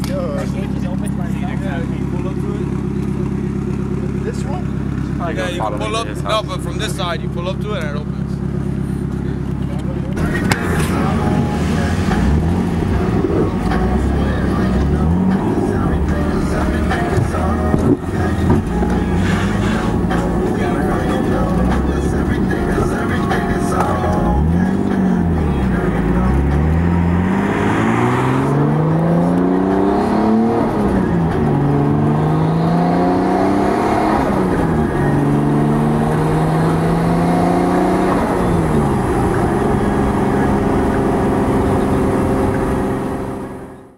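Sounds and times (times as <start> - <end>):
car engine accelerating: 0.0 - 43.9.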